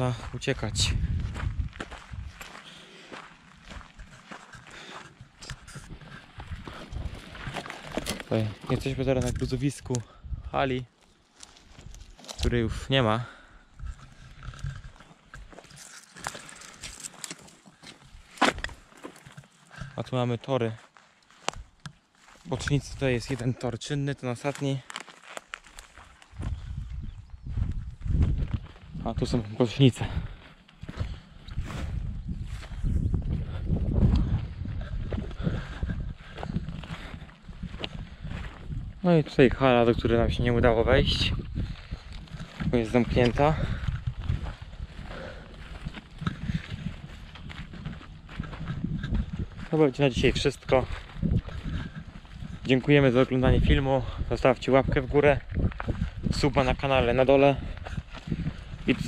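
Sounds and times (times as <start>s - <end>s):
footsteps on gravel: 0.0s - 59.0s.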